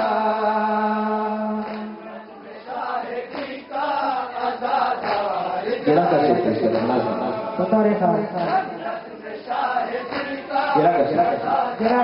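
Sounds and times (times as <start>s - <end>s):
men chanting a mourning lament: 0.0s - 12.0s.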